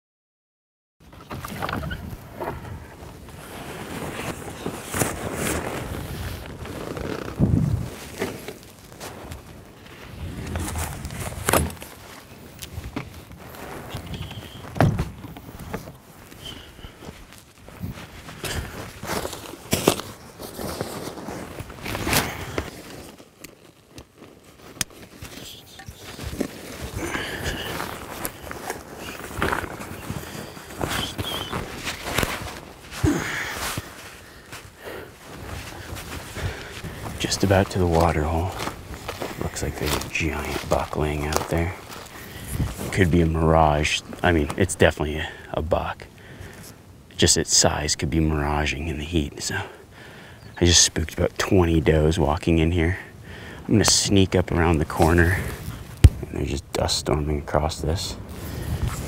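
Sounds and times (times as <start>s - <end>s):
footsteps on dry ground: 2.2s - 45.4s.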